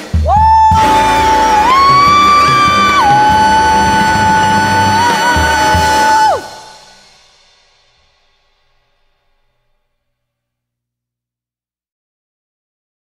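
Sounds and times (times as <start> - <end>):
big-band jazz: 0.0 - 7.0
drum and bass hits: 0.0 - 7.2
long high held note: 0.3 - 7.2.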